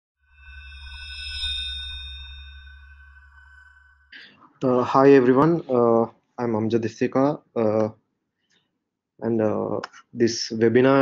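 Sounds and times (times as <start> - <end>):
low synth drone: 0.2 - 6.1
held high synth tones: 0.4 - 6.1.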